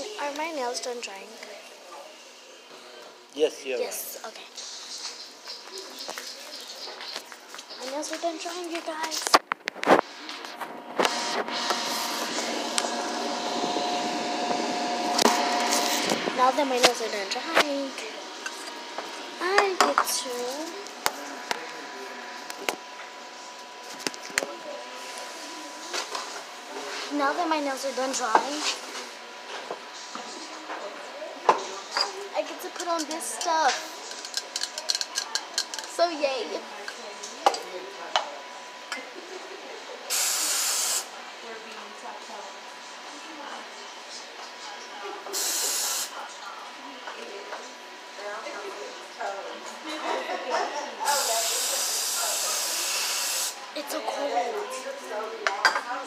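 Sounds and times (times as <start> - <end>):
small electric motor whining: 11.0 - 21.7.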